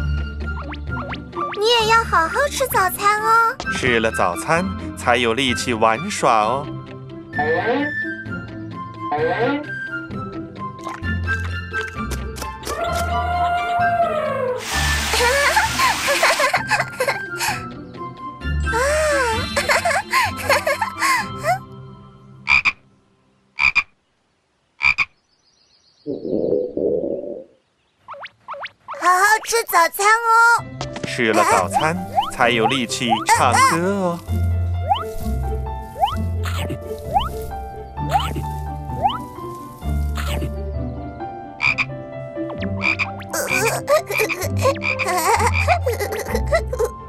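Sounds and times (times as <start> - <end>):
cartoon frog croaks: 22.5 - 22.8, 23.6 - 23.9, 24.8 - 25.1, 31.4 - 33.8, 34.9 - 35.1, 36.0 - 37.4, 38.1 - 39.3, 40.1 - 40.6, 41.6 - 41.9, 42.5 - 46.4.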